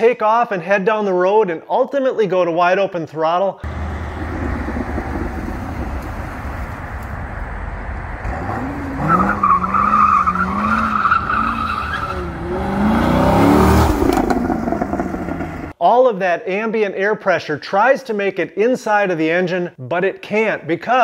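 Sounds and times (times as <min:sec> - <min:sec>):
car engine running: 0:03.6 - 0:15.7
tire squeal: 0:08.2 - 0:14.8.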